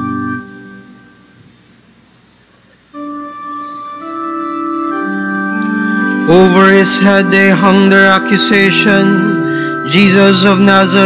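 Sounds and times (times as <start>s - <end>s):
pipe organ playing: 0.0s - 1.4s, 2.9s - 11.0s
organ chord echo: 0.0s - 1.5s, 2.9s - 11.0s
faint steady high tone: 2.5s - 11.0s.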